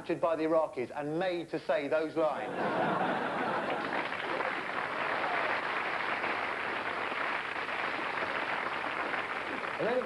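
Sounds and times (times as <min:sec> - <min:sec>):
audience laughing: 0:02.4 - 0:04.7
audience applauding: 0:03.1 - 0:10.0.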